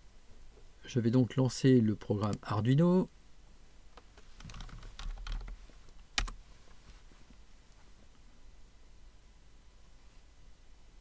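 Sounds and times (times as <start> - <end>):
typing on computer keyboard: 4.4 - 5.6, 6.2 - 6.4.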